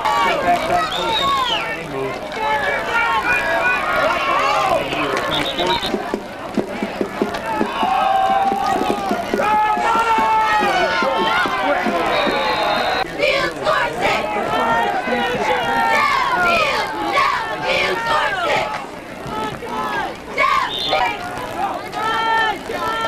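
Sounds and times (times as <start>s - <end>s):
crowd shouting: 0.0s - 23.0s.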